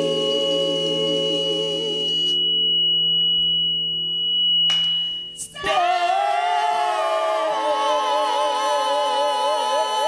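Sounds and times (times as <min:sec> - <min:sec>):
choir singing with vibrato: 0:00.0 - 0:02.4, 0:05.4 - 0:10.0
steady high pure tone: 0:00.0 - 0:10.0.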